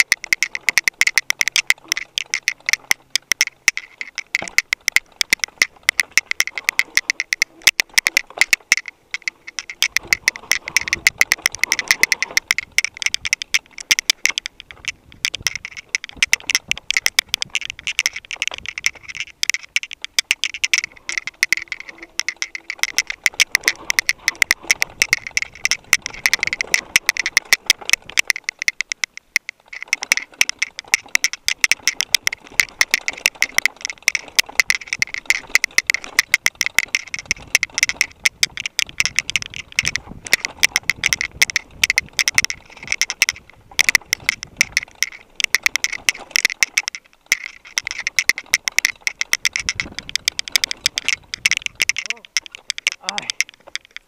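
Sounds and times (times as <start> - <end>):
mountain bike rattling on rocks: 0.0 - 54.0.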